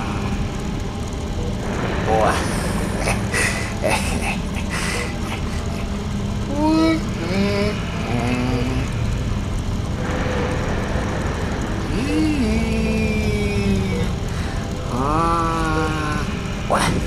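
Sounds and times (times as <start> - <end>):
low mechanical hum: 0.0 - 17.0.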